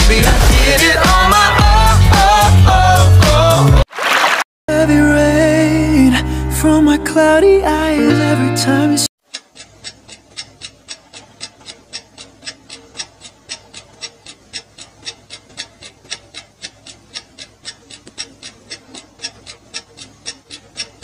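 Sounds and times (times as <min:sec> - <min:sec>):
clock ticking: 0:09.2 - 0:21.0.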